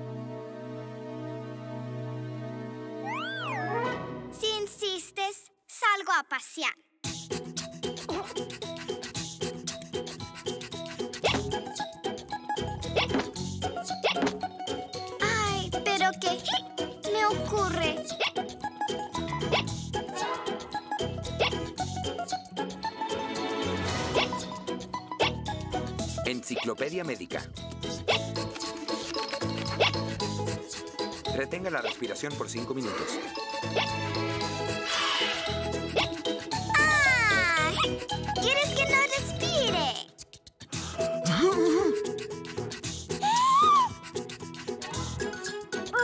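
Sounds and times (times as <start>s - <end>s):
light background music: 7.3s - 40.0s
cartoon hiccups: 41.0s - 42.3s.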